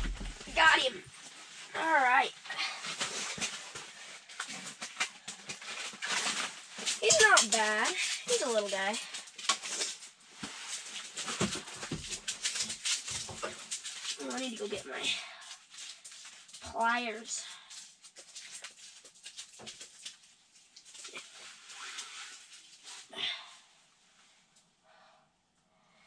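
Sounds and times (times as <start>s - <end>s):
clicks and rustles of handling: 2.8s - 16.8s, 17.4s - 23.0s.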